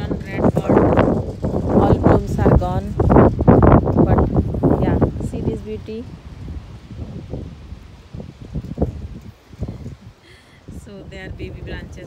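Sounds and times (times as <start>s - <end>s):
wind gusting on microphone: 0.0s - 12.0s.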